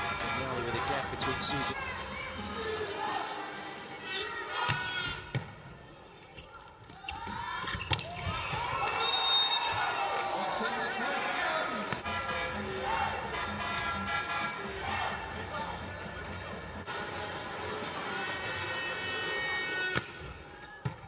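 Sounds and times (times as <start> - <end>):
crowd shouting and cheering: 0.0 - 5.4, 6.6 - 21.0.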